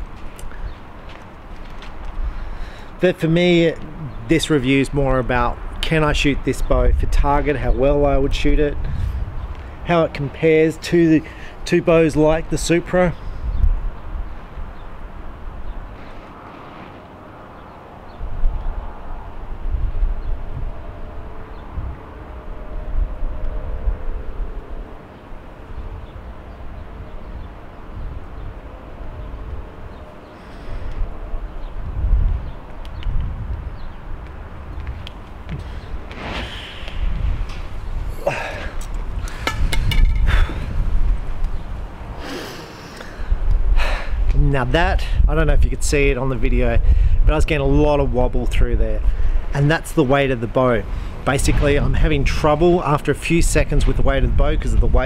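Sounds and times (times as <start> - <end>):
wind gusting on microphone: 0.0 - 55.0
sharp knocks and clicks: 38.8 - 40.3.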